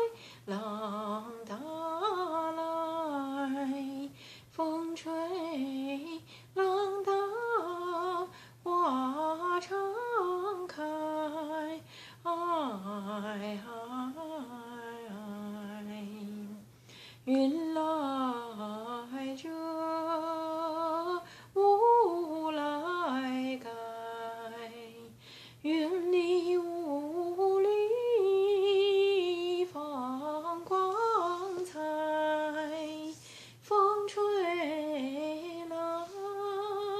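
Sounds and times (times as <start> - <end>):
woman singing unaccompanied: 0.0 - 36.9
woman breathing in: 0.2 - 0.5, 4.1 - 4.5, 11.8 - 12.2, 16.7 - 17.2, 21.2 - 21.6, 25.2 - 25.6, 33.2 - 33.6.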